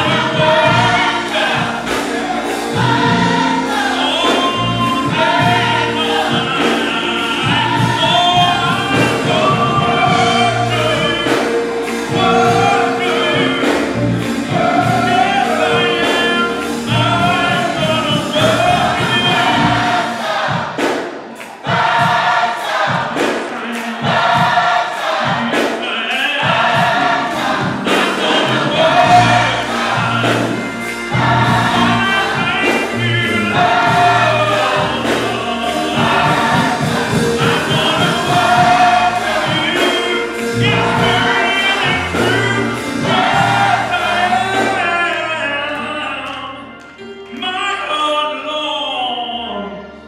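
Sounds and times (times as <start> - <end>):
drums: 0.0 - 45.0
gospel choir singing: 0.0 - 50.0
keyboard: 0.0 - 50.0.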